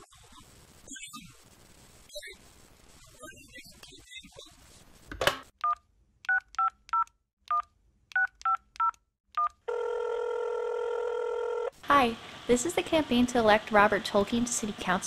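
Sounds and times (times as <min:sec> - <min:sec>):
telephone ringing tone: 0:09.7 - 0:11.8.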